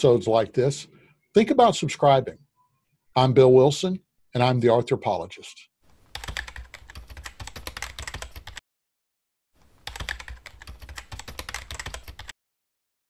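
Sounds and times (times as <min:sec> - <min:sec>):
computer keyboard typing: 0:06.1 - 0:08.6, 0:09.8 - 0:12.4.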